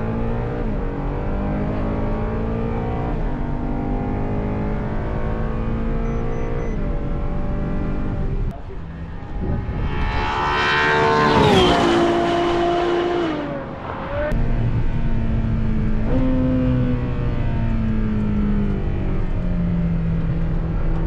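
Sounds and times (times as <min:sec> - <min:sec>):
race car passing: 0:08.8 - 0:14.8.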